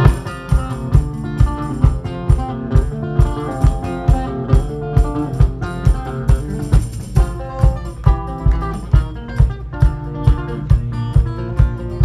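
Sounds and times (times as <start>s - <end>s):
drum kit steady beat: 0.0s - 12.0s
guitar chords ringing: 0.0s - 12.0s.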